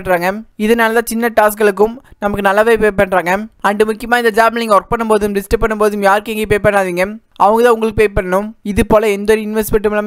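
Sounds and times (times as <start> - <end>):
person narrating: 0.0 - 10.0.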